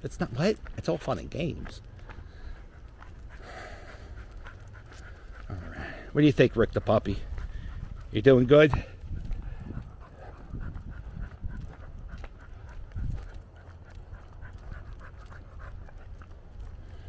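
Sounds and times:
dog panting: 0.1s - 17.0s
footsteps on pavement: 0.1s - 17.0s.

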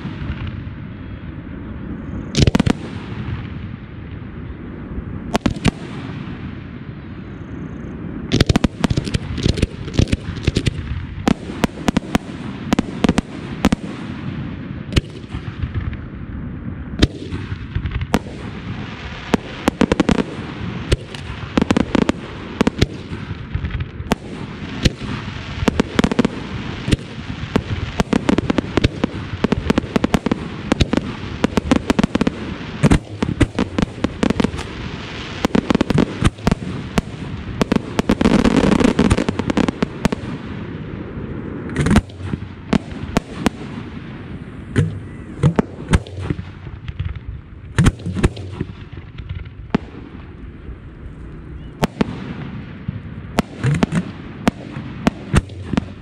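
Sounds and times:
fireworks bangs: 0.0s - 1.1s, 2.1s - 4.6s, 5.2s - 7.2s, 8.1s - 56.0s
fireworks crackle and rumble: 0.0s - 56.0s.

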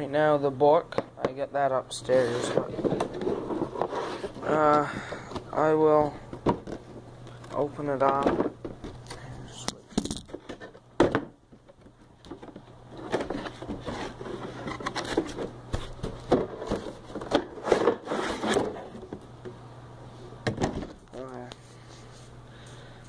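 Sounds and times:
plastic rustling and scraping: 2.1s - 5.2s, 11.9s - 19.2s.

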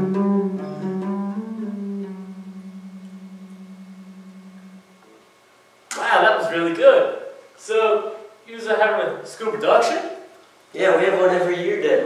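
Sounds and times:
electric bass guitar note: 0.0s - 5.3s
person speaking: 5.9s - 12.0s.

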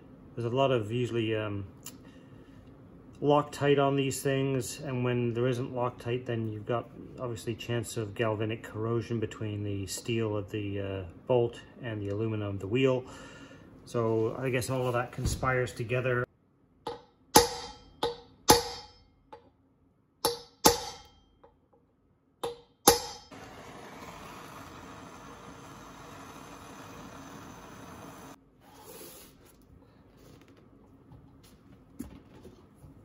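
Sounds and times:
gas torch hissing: 23.3s - 29.3s.

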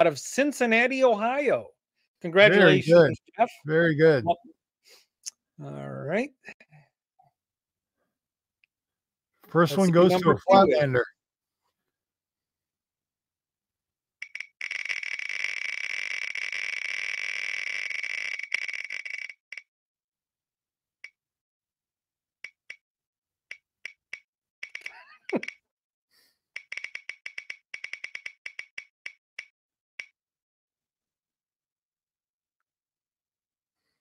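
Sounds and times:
spinning wheel ticks: 26.6s - 30.2s.

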